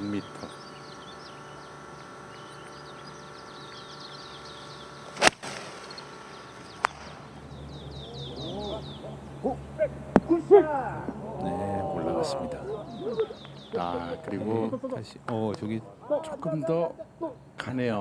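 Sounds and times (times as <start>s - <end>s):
birds chirping: 0.0s - 18.0s
golf club striking ball: 5.1s - 7.4s.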